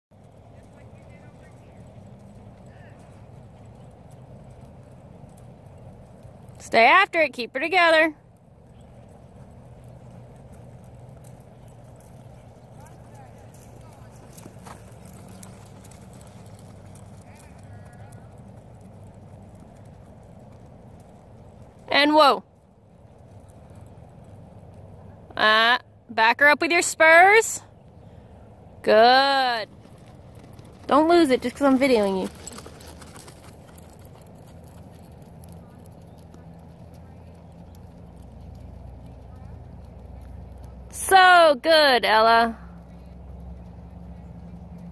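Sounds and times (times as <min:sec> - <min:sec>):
low steady rumble: 0:00.2 - 0:44.9
horse hoofbeats on sand: 0:08.6 - 0:24.9, 0:29.4 - 0:40.8.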